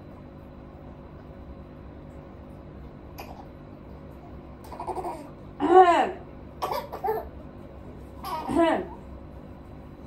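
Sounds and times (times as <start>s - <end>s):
baby vocalizing: 6.6s - 7.3s, 8.2s - 8.6s.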